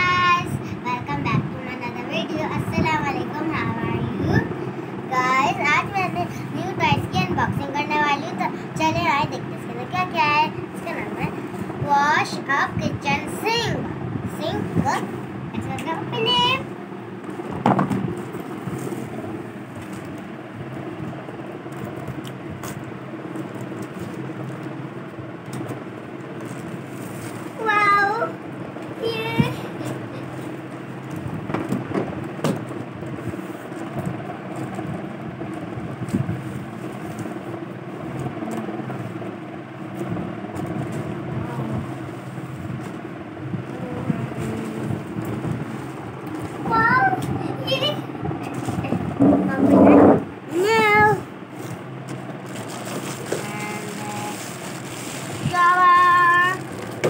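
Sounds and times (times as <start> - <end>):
steady background hum: 0.0 - 57.0.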